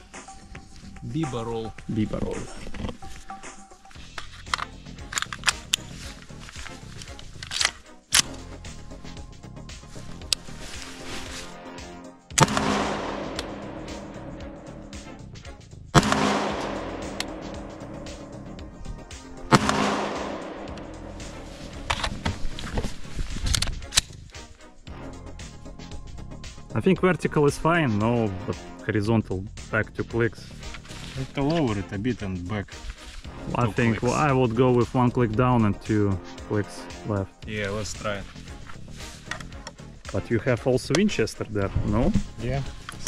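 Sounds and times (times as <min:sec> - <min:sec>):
background music: 0:00.0 - 0:43.0
rifle shots with echo: 0:12.4 - 0:15.0, 0:16.0 - 0:18.8, 0:19.4 - 0:22.3.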